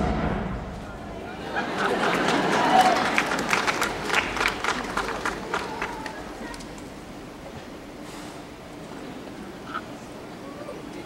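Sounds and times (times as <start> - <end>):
audience applauding and cheering: 1.3 - 6.8.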